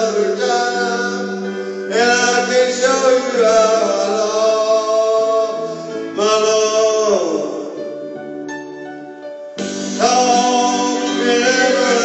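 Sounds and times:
person singing long note: 9.9s - 12.0s.

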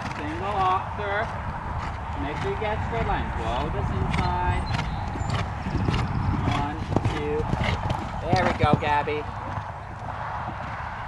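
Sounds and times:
horse hoofbeats on sand: 0.0s - 9.8s
steady low rumble: 0.0s - 11.0s.

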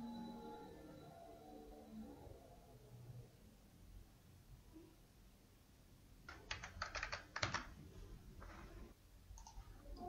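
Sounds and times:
faint keyboard keystrokes: 6.3s - 7.8s.

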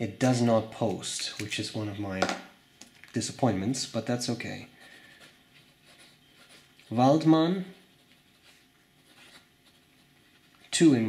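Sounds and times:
fountain pen scratching on paper: 4.8s - 7.0s, 7.9s - 10.7s.

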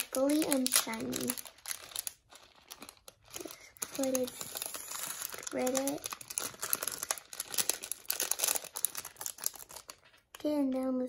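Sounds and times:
plastic bag crinkling: 0.0s - 10.4s.

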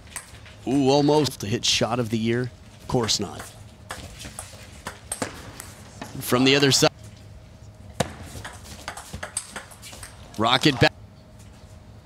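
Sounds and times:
table tennis ball clicks: 8.0s - 10.7s.

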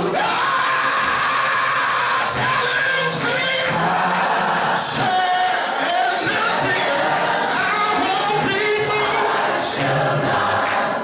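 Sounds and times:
man singing long high shout: 0.0s - 4.1s.

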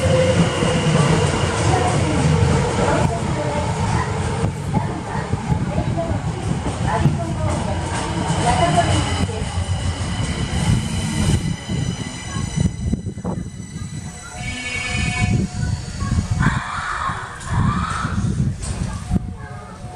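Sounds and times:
high electric whine of train: 0.0s - 19.9s
train wheel and track rumble: 0.0s - 19.9s.

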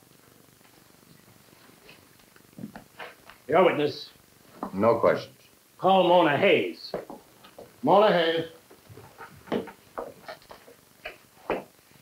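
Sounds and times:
faint television hiss: 0.0s - 12.0s.

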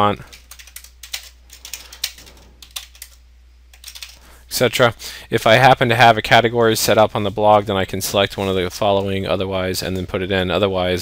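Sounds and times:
typing on computer keyboard: 0.3s - 4.2s.

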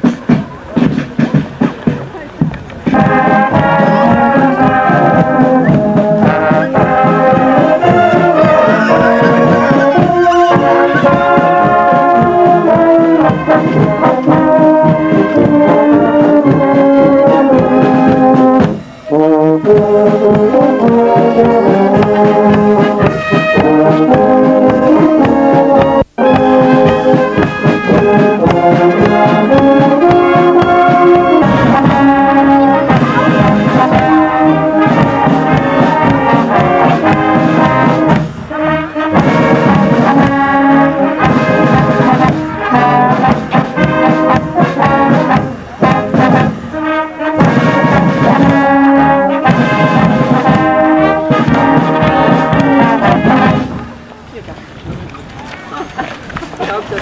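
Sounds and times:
bass drum beat: 0.0s - 18.8s, 19.6s - 38.4s, 39.1s - 46.7s
brass band playing: 0.0s - 54.4s.

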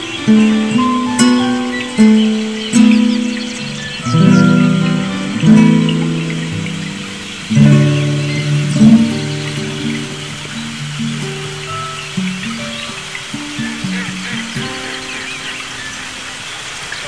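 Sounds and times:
classical guitar plucked notes: 0.0s - 16.6s
flowing water: 0.0s - 17.0s.

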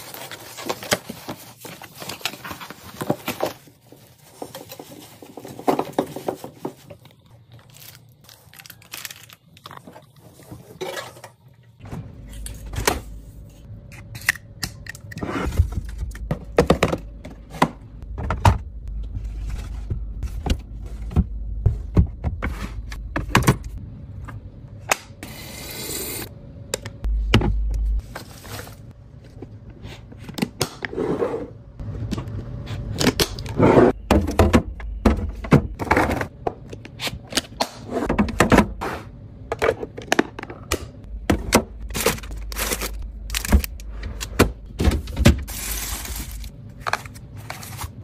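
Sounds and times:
plastic containers clacking and scraping: 0.1s - 7.2s.

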